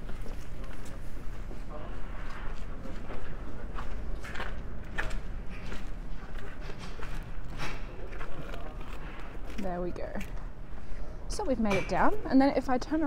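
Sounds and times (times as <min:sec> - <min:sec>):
footsteps on icy cobblestones: 0:00.0 - 0:11.6.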